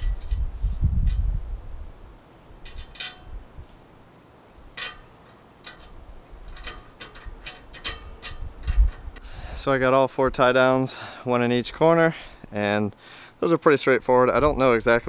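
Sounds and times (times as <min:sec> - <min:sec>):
small metallic clicks and clinks: 0:02.2 - 0:03.4, 0:04.6 - 0:09.0.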